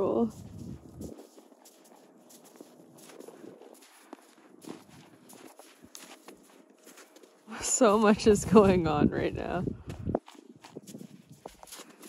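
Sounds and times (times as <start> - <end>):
hoof footfalls in snow: 0.0 - 12.0.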